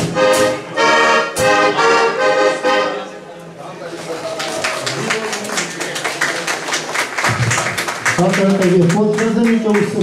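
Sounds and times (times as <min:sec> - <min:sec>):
button accordion playing: 0:00.0 - 0:03.4.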